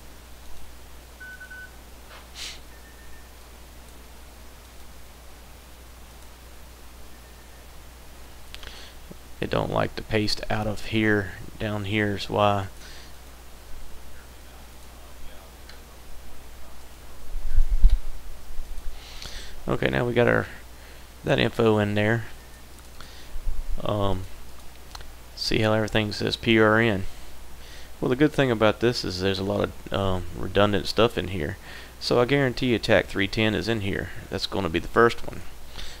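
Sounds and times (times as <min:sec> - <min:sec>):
low electrical hum: 0:00.0 - 0:36.0.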